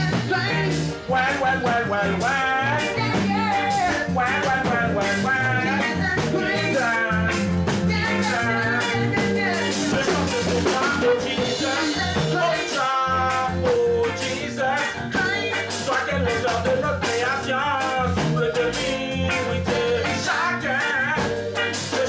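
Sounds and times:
reggae song with singing: 0:00.0 - 0:22.0.

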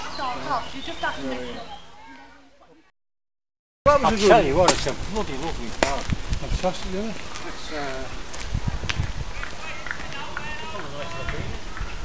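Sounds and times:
footsteps on paved path: 0:03.9 - 0:12.0.

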